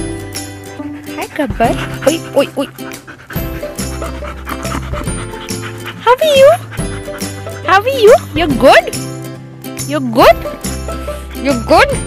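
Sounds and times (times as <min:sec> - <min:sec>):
dog panting: 0:00.2 - 0:09.3.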